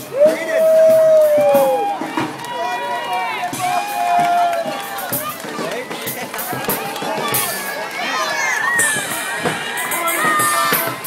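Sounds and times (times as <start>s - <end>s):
street crowd chatter: 0.0s - 11.0s
voices shouting drawn-out calls: 0.0s - 11.0s.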